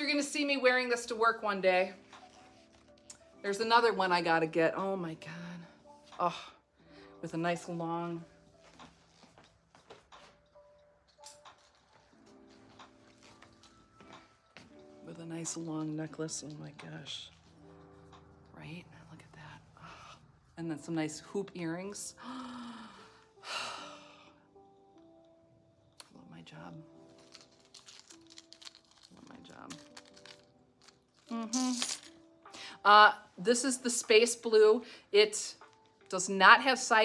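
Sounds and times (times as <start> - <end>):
faint background music: 0.0 - 37.0
necklace chain clicks and rustles: 8.5 - 18.4, 26.8 - 32.3.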